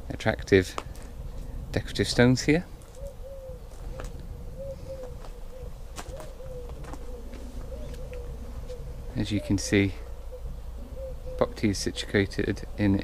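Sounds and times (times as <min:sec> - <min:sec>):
pigeon cooing: 0:02.1 - 0:13.0.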